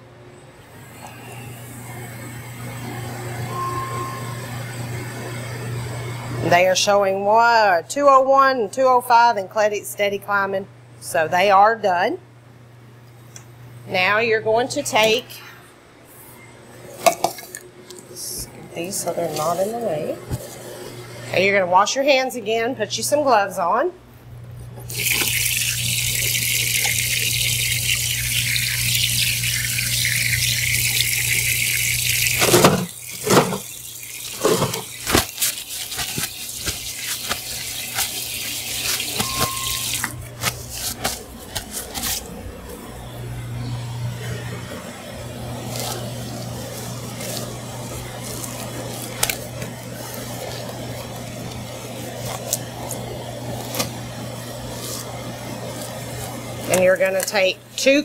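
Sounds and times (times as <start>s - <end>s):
tap water running: 24.9s - 41.3s, 45.5s - 58.0s
splashes and knocks: 32.4s - 33.7s, 34.3s - 40.6s
steady low hum: 36.0s - 58.0s.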